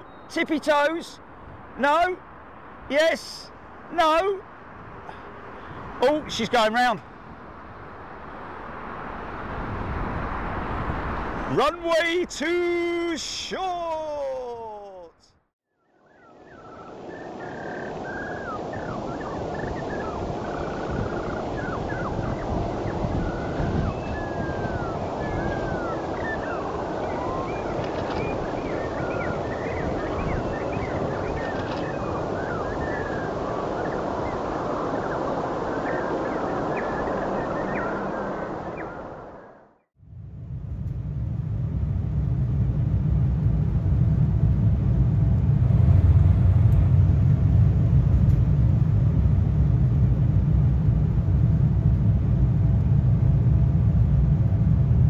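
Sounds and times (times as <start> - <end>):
jet engines roaring: 7.2 - 12.4, 40.2 - 55.0
small birds chirping: 15.8 - 39.1
airliner cabin rumble: 40.0 - 55.0.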